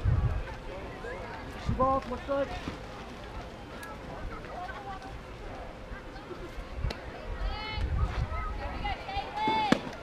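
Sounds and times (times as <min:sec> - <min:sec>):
faint overlapping chatter and calls: 0:00.0 - 0:10.0.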